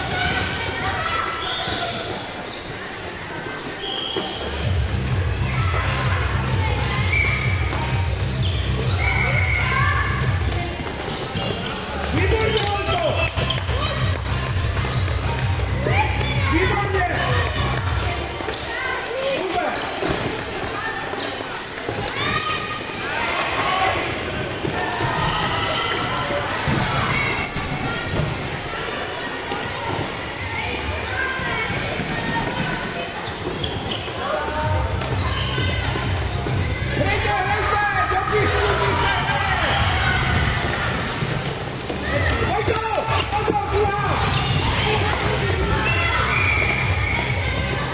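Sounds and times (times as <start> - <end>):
children shouting and calling: 43.2 - 47.9.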